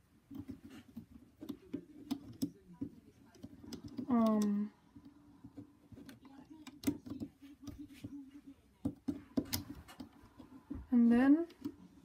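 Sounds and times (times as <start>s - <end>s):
rubber bands clicking on plastic pegs: 0.3s - 7.8s.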